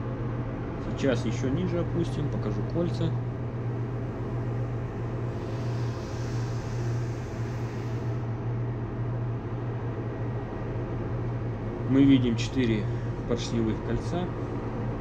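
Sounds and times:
engine room machinery hum: 0.0s - 15.0s
hiss: 5.2s - 8.4s.

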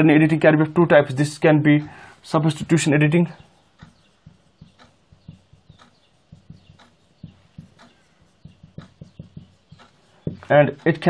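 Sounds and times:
marker pen writing on whiteboard: 2.4s - 11.0s.

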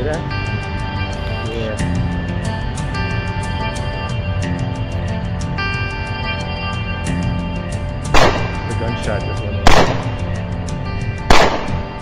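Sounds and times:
background music: 0.0s - 12.0s
gunshots: 8.2s - 8.8s, 9.6s - 10.4s, 11.3s - 12.0s.

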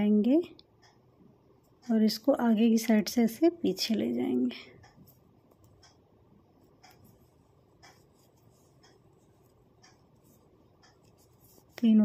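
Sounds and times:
knitting needles tapping: 3.7s - 12.0s.

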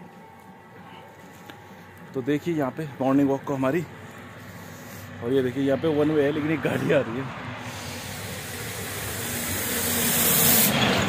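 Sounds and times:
car approaching on road: 0.0s - 11.0s.

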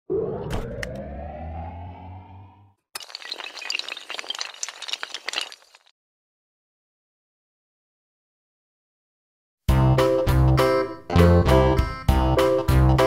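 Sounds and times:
rising tone: 0.1s - 2.7s
glass breaking: 3.0s - 5.9s
glass shards tinkling: 3.0s - 5.9s.

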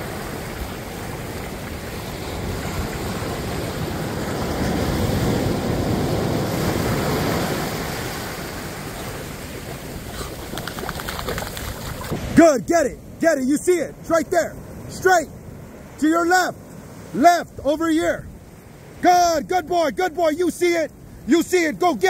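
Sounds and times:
ocean surf breaking: 0.0s - 22.0s.

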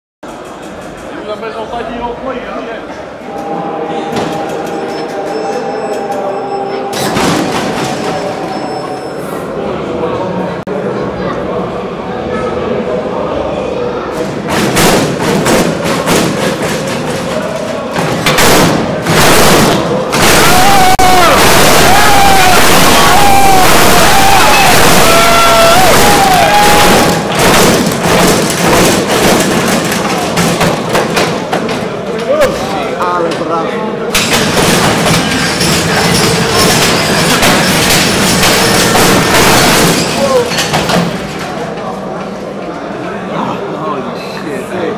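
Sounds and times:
crowd cheering and whistling: 20.1s - 27.3s.

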